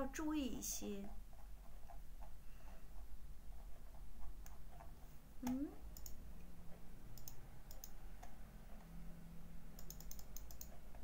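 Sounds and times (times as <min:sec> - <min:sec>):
computer clicks: 0:04.4 - 0:06.2, 0:07.1 - 0:08.4, 0:09.7 - 0:11.0.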